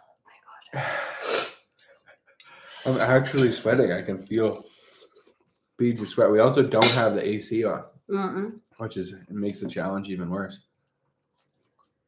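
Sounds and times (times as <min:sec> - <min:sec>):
man sighing breathily: 0:00.7 - 0:01.6.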